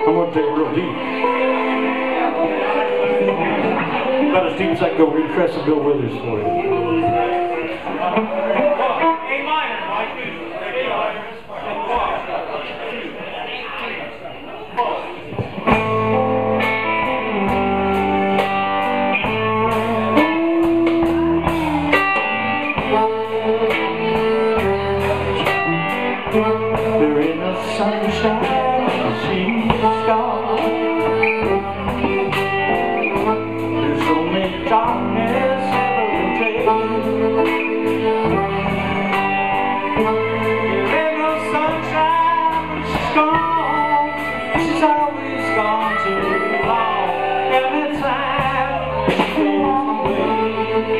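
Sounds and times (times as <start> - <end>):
man singing: 0.0 - 7.7, 15.7 - 50.9
blues band playing: 0.0 - 10.6, 15.1 - 50.9.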